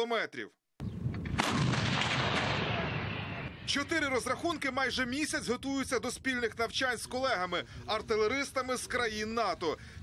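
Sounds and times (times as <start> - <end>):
artillery gun firing: 1.3 - 3.6.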